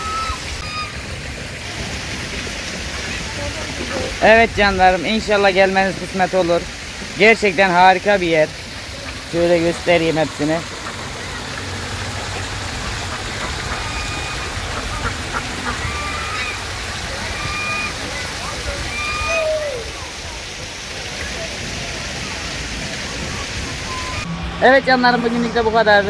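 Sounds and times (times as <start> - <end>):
faint short high calls: 0.0 - 1.0
waterfall trickling into pond: 0.0 - 24.3.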